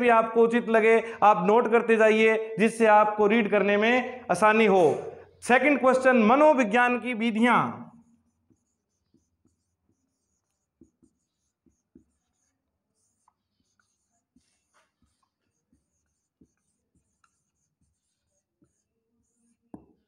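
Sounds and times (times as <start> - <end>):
marker writing on whiteboard: 4.3 - 6.6, 7.9 - 20.0.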